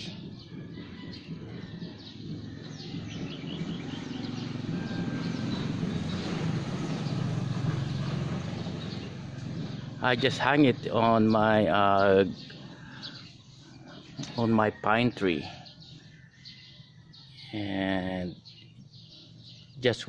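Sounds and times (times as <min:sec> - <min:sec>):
faint birds chirping: 0:00.0 - 0:20.0
motor vehicle rumbling by: 0:00.0 - 0:20.0.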